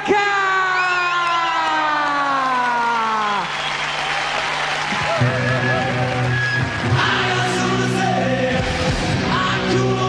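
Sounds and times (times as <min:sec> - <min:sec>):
crowd cheering and applauding: 0:00.6 - 0:09.1.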